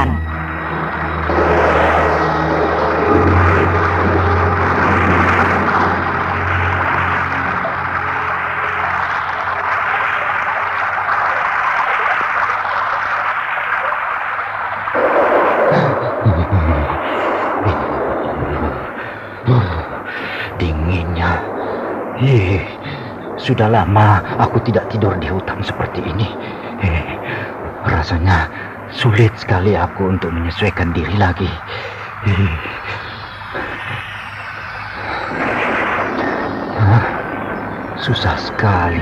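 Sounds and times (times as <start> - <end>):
heavy rain hissing: 0.0 - 39.0
low music drone: 0.0 - 39.0
low vocal sounds: 15.7 - 21.5.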